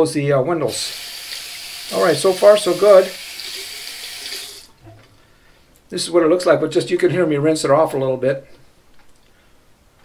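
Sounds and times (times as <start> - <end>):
faucet running into sink: 0.8 - 4.7.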